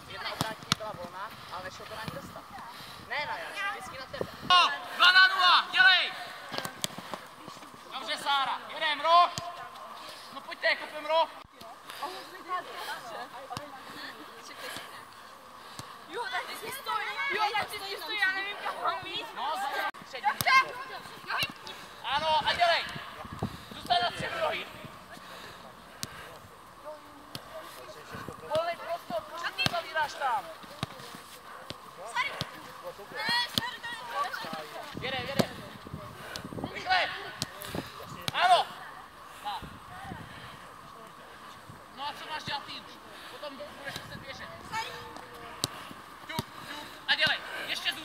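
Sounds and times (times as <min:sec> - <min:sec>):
players shouting: 0:15.8 - 0:23.2, 0:27.0 - 0:35.6
football being kicked: 0:34.4 - 0:35.7.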